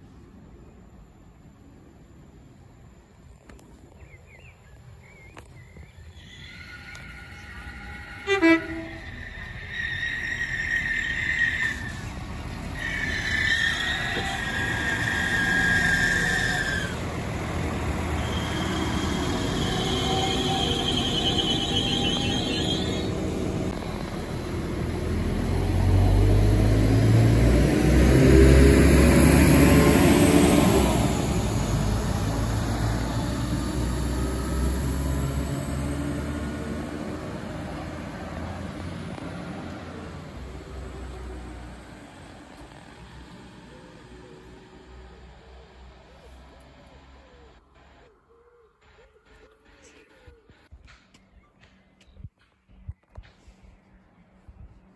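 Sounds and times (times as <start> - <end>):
train rumbling on rails: 5.1 - 46.0.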